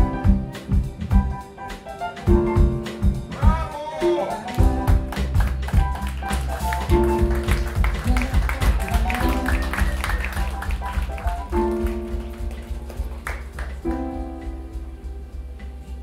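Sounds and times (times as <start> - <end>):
bass guitar: 0.0 - 16.0
drum-kit beat with cymbal taps: 0.0 - 16.0
keyboard chords: 0.0 - 16.0.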